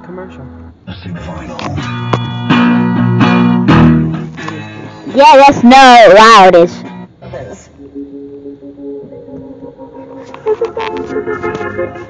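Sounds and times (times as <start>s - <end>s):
music from car radio: 0.9s - 5.4s, 6.0s - 12.0s.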